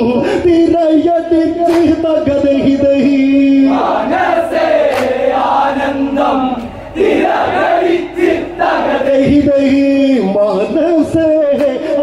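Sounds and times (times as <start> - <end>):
men singing in unison: 3.0 - 10.3.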